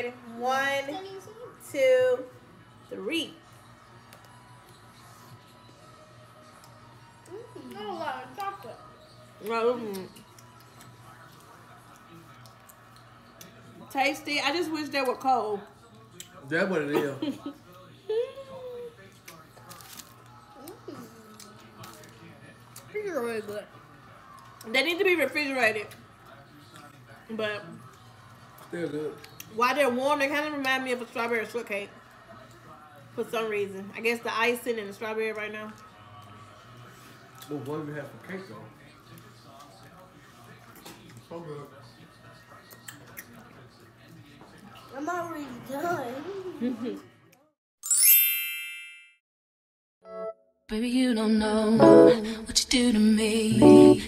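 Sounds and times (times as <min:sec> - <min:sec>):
faint background music: 0:00.0 - 0:47.6, 0:50.1 - 0:54.0
mouth and chewing noises: 0:27.8 - 0:29.6, 0:42.6 - 0:43.6.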